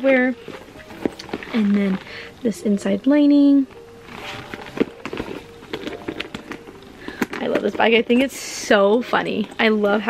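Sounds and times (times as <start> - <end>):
backpack zipper clicks and rustles: 0.5 - 2.1, 4.1 - 7.4.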